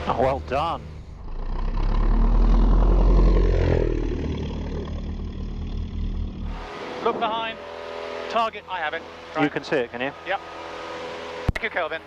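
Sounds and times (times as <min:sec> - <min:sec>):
propeller plane passing overhead: 0:00.0 - 0:12.0.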